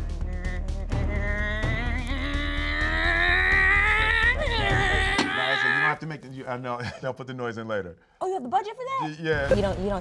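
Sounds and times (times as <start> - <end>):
woman imitating motorcycle engine: 0.0 - 4.9.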